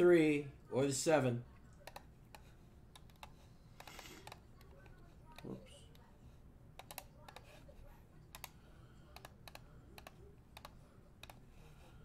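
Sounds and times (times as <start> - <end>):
faint background hum: 0.0 - 12.0
computer keyboard keys clicking: 1.8 - 6.0, 6.8 - 7.5, 8.3 - 11.4.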